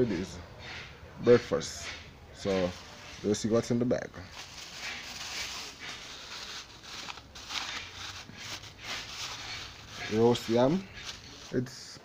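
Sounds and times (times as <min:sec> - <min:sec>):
plastic bag rustling: 0:02.4 - 0:11.7.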